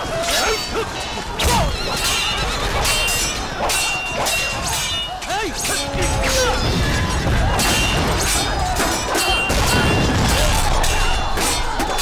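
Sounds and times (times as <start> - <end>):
sword fight clashing: 0.0 - 12.0.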